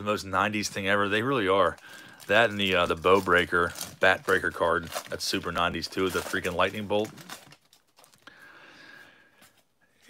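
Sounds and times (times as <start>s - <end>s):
wrapper crinkling: 0.0s - 8.4s.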